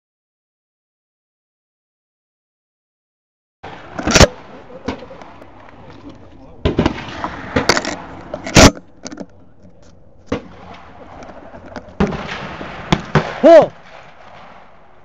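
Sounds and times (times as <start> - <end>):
shotgun shots: 6.6 - 8.8, 10.3 - 11.2, 12.0 - 15.0.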